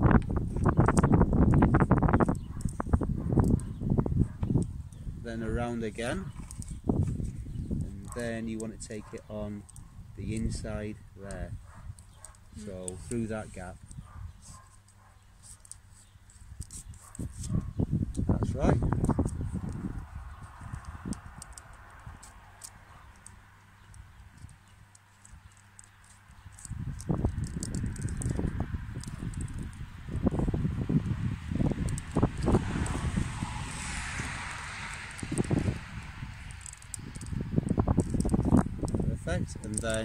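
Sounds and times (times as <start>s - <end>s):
bark strips crackling and rustling: 0.0s - 40.0s.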